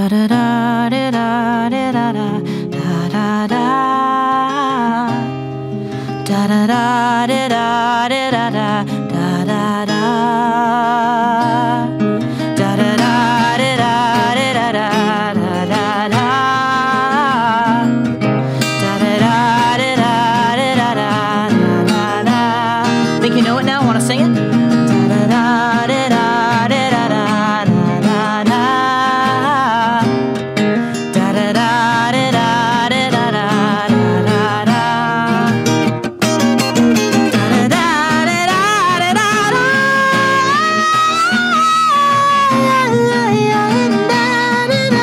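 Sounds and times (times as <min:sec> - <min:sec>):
finger-picked acoustic guitar: 0:00.0 - 0:45.0
wordless singing with vibrato: 0:00.0 - 0:45.0.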